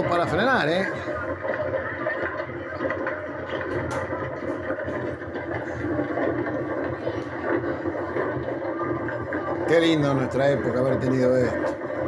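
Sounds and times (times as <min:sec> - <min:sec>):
wooden kart rolling on asphalt: 0:00.0 - 0:12.0.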